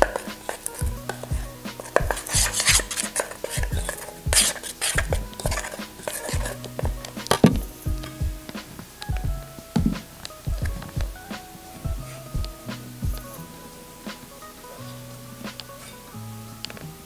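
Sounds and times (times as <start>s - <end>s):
metal spoon scraping a pot: 0.1s - 6.7s.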